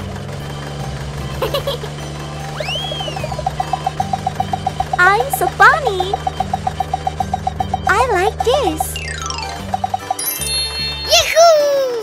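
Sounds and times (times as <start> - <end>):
rapid mechanical ticking: 0.0 - 10.2.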